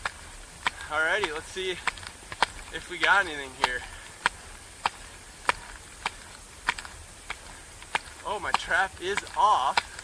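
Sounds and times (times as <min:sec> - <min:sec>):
faint steady hiss: 0:00.0 - 0:10.0
ski bindings clicking: 0:00.0 - 0:10.0.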